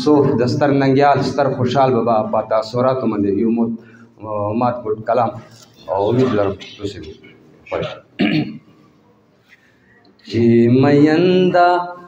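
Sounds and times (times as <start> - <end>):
man clearing his throat: 6.0 - 8.8.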